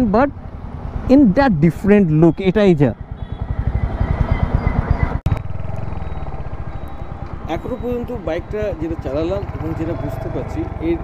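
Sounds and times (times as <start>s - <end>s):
single-cylinder motorcycle engine running: 2.9s - 11.0s.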